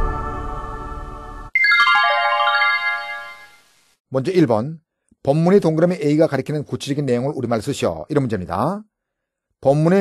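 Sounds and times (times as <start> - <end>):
bell-like electronic notes: 1.6 - 3.6.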